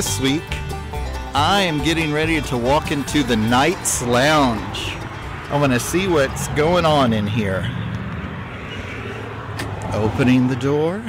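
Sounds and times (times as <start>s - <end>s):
road traffic hiss: 0.2s - 11.0s.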